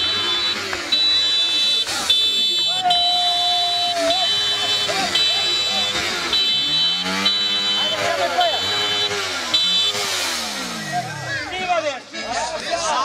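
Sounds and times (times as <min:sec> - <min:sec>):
vehicle engine revving: 0:00.0 - 0:12.0
high electronic beeps: 0:03.8 - 0:11.0.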